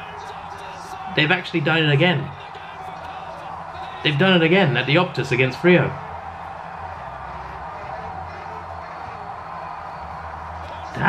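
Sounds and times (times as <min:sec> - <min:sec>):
televised sports broadcast noise: 0:00.0 - 0:11.0.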